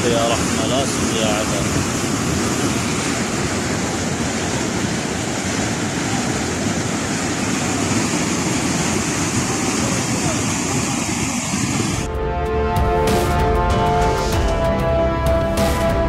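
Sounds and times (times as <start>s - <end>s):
water rushing down concrete channel: 0.0s - 12.0s.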